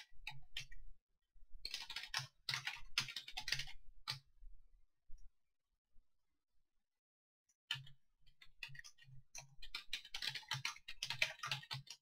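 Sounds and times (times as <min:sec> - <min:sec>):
typing on computer keyboard: 0:01.6 - 0:04.2, 0:07.7 - 0:08.0, 0:08.6 - 0:12.0.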